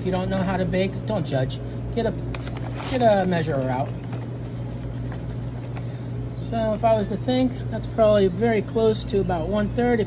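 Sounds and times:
kitchen equipment humming: 0.0 - 10.0.

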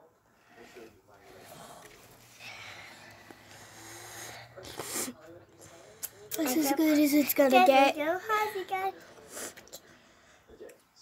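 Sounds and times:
breathing close to microphone: 0.4 - 6.3, 8.6 - 10.5
breathy puff: 3.6 - 5.1
child's voice: 6.4 - 9.0.

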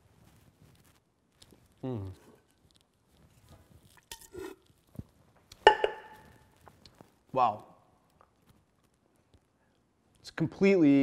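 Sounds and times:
metal bucket clanking on stone: 5.7 - 6.2.

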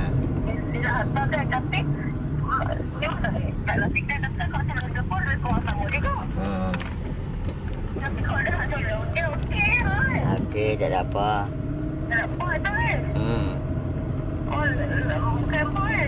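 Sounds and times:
people talking: 0.0 - 6.9, 8.0 - 11.5, 12.1 - 13.6, 14.5 - 16.0
car engine and road noise: 0.0 - 16.0.

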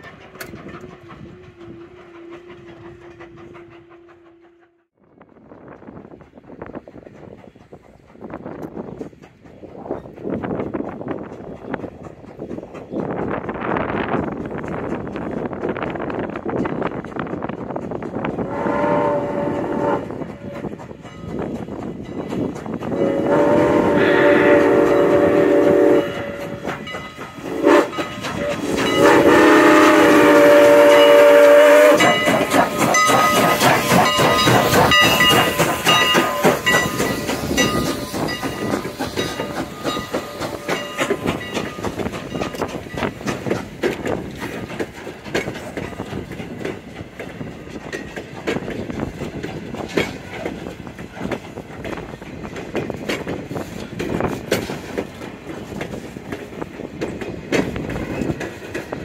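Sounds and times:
train wheels clattering over rail joints: 0.0 - 4.8, 5.4 - 59.0
steam locomotive chime whistle: 18.4 - 20.8, 22.9 - 43.1.

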